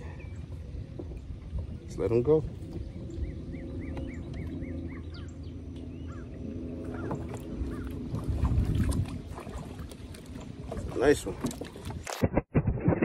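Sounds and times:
low rumble: 0.0 - 12.0
steady low hum: 0.0 - 12.0
bird chirping: 2.8 - 8.0.

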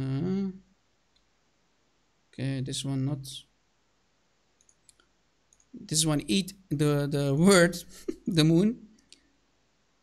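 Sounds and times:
faint click: 1.1 - 1.3, 4.6 - 5.7.

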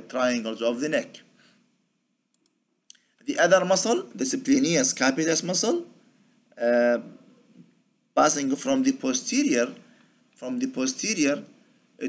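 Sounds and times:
computer mouse clicking: 2.3 - 3.0.

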